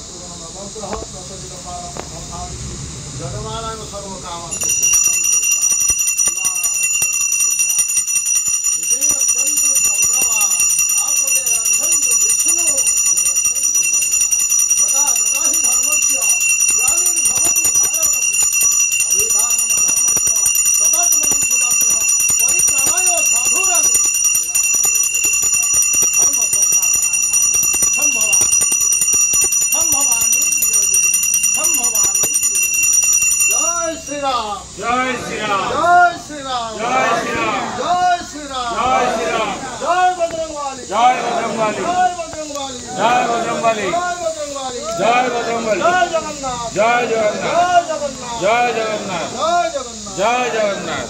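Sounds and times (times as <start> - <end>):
voices chanting: 1.3 - 51.0
bell ringing: 4.5 - 34.7.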